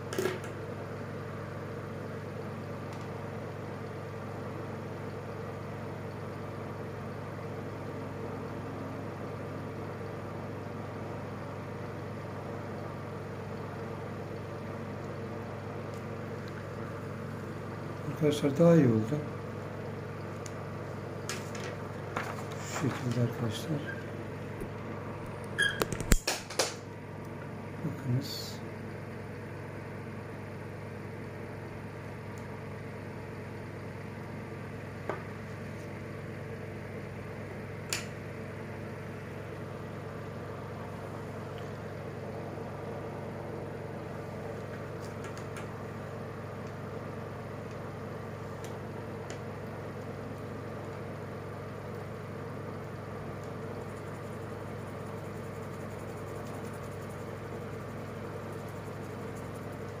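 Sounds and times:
steady machine hum: 0.0 - 60.0.

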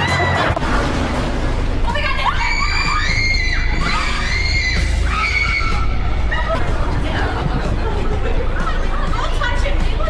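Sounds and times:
people screaming in fright: 0.0 - 0.6, 2.2 - 6.7
background music: 0.0 - 10.0.

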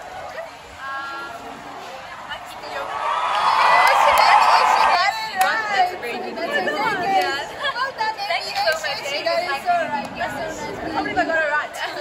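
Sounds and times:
young women chatting: 2.0 - 12.0.

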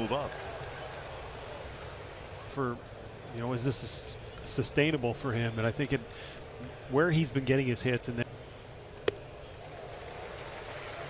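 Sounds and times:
murmur of ballpark crowd: 0.0 - 11.0.

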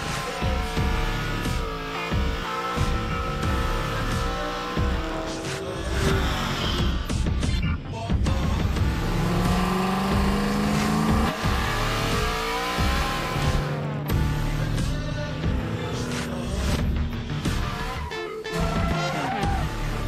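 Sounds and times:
race car engines revving: 0.0 - 7.5, 8.3 - 20.0
electronic music with pulsing beat: 0.0 - 20.0
tyres squealing: 17.3 - 20.0.

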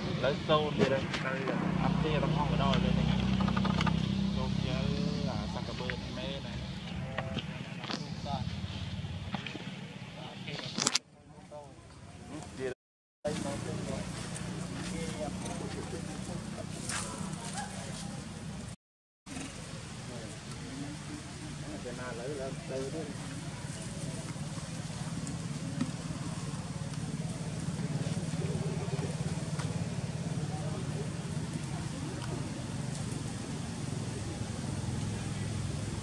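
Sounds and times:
low engine hum: 13.3 - 36.0.

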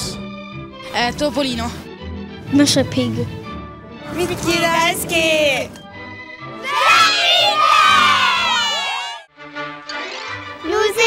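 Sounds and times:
boys shouting and cheering: 6.6 - 9.3.

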